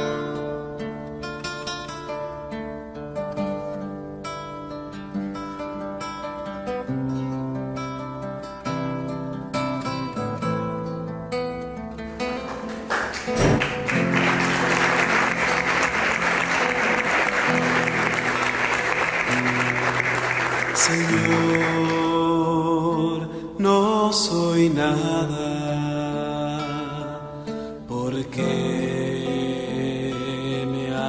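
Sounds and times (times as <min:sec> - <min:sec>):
acoustic guitar music: 0:00.0 - 0:31.0
congregation applauding: 0:12.1 - 0:22.3.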